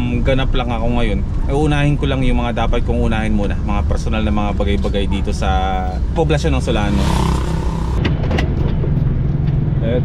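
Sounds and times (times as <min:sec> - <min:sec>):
van engine drone: 0:00.0 - 0:10.0.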